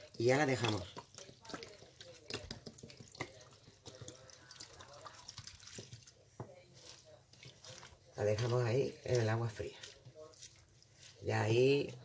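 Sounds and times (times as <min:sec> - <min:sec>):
water pouring and splashing: 0:00.0 - 0:06.2
wet ticks and crackles: 0:00.0 - 0:06.2.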